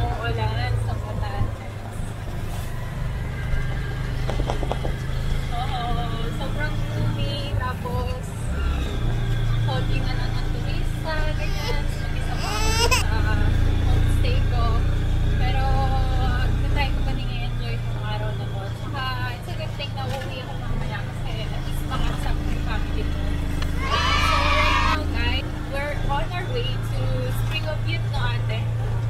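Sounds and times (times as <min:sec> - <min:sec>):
vehicle engine droning: 0:00.0 - 0:29.0.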